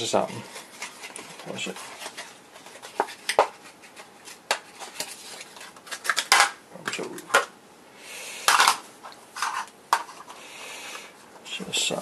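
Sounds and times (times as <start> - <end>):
plastic cassette clicks and rustle: 0.8 - 7.5.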